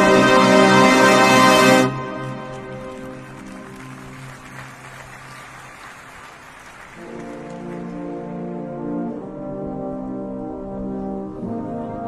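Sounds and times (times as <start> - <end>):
brass playing a slow ballad: 0.0 - 3.9, 7.0 - 12.0.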